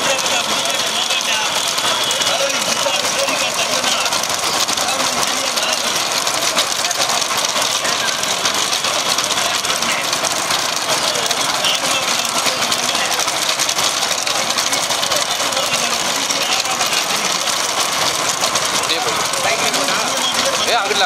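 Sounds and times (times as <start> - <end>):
vehicle engine running: 0.0 - 21.0.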